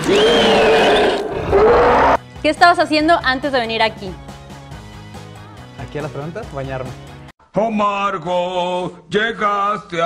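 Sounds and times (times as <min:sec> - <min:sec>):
monster roaring scream: 0:00.0 - 0:02.2.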